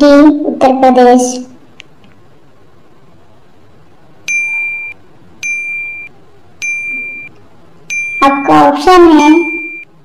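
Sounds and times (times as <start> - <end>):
short electronic dings: 4.3 - 7.3, 7.9 - 9.9.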